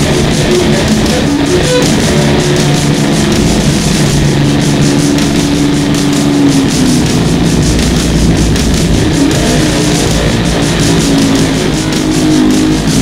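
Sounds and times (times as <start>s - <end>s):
distorted electric guitar lead: 0.0s - 13.0s
steady drum beat: 0.0s - 13.0s.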